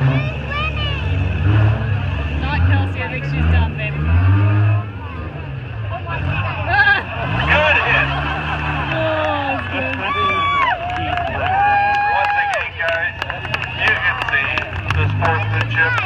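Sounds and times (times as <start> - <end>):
car engine running: 0.0 - 16.0
spectators talking and calling out: 0.0 - 16.0.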